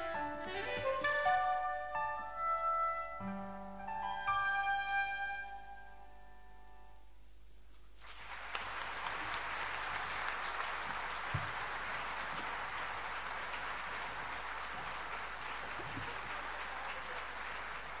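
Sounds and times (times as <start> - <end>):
audience applauding: 8.0 - 18.0.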